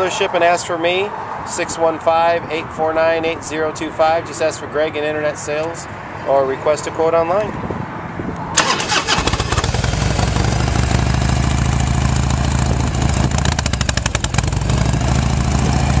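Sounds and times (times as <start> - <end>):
motorcycle engine starter cranking: 8.6 - 11.3
motorcycle engine idling: 9.3 - 16.0.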